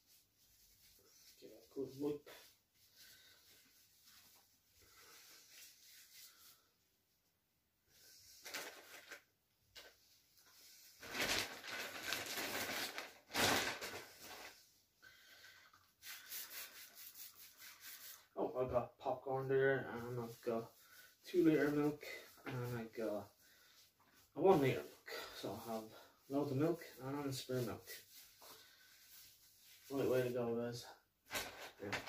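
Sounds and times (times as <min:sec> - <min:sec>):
wipe rubbing over plastic packaging: 0:00.0 - 0:07.2, 0:14.0 - 0:18.6, 0:19.2 - 0:30.8
man speaking: 0:01.4 - 0:02.5, 0:18.4 - 0:20.7, 0:21.3 - 0:23.3, 0:24.4 - 0:28.0, 0:29.9 - 0:31.0
rustling of grocery packaging: 0:08.3 - 0:09.9, 0:11.0 - 0:14.7.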